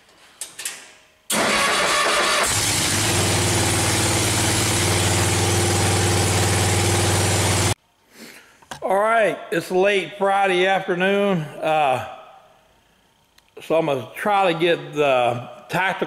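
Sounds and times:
small engine cranking and idling: 1.3 - 7.8.

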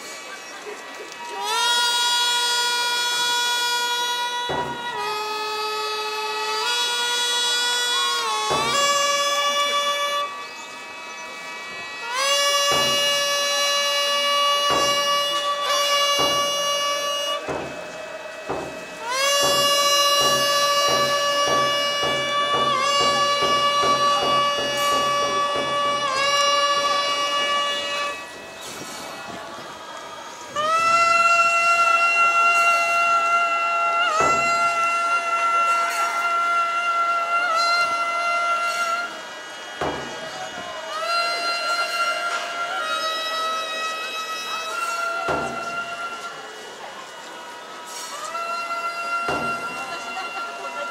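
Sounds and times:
reed pipes holding long notes: 0.0 - 50.9.

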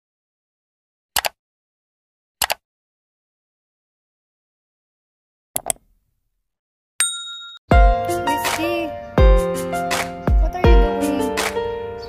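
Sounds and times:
bright bell-like ding: 7.0 - 7.7
music with heavy beat: 7.7 - 11.6.

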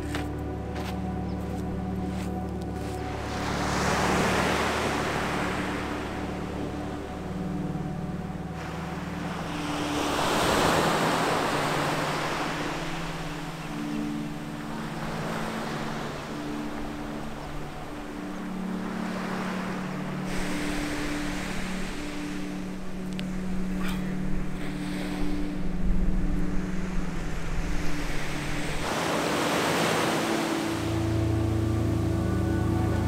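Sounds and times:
ocean surf on beach: 2.8 - 33.0.

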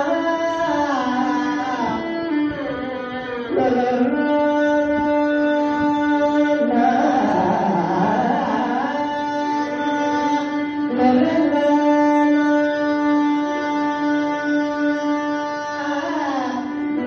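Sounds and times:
violin sliding melody: 0.0 - 17.0.

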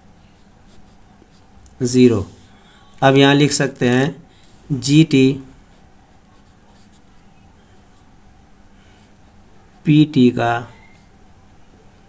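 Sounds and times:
pen scratching on paper: 5.6 - 8.1.

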